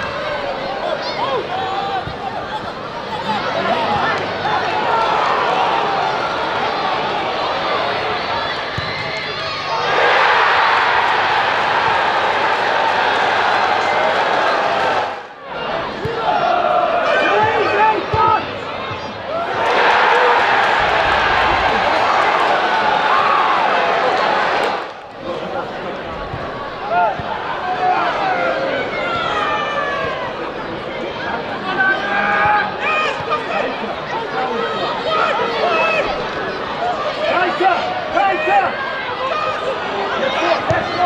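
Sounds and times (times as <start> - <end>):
crowd cheering: 0.0 - 41.0
crowd voices: 0.0 - 41.0.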